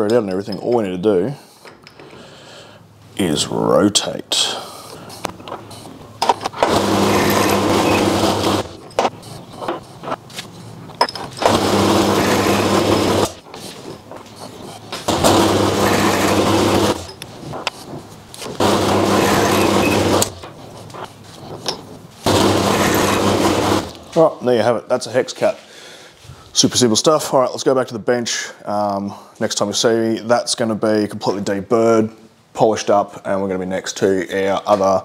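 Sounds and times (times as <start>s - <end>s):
milling machine cutting metal: 6.4s - 9.8s, 11.0s - 17.7s, 18.4s - 20.6s, 22.3s - 24.0s.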